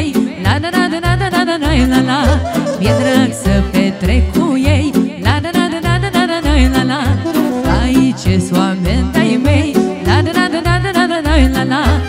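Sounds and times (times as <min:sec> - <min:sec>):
accordion: 0:00.0 - 0:12.0
keyboard: 0:00.0 - 0:12.0
woman singing with vibrato: 0:00.0 - 0:12.0
violin: 0:01.7 - 0:04.6
saxophone: 0:01.8 - 0:04.0, 0:07.0 - 0:08.1
quick bass and drum beat: 0:02.2 - 0:04.2.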